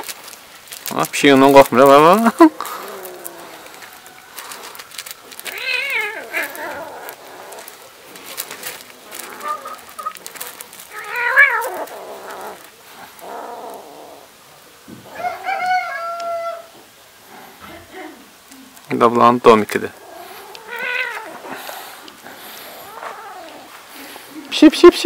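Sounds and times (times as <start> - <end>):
kitten meowing: 5.5 - 7.2, 10.9 - 12.6, 20.4 - 21.4.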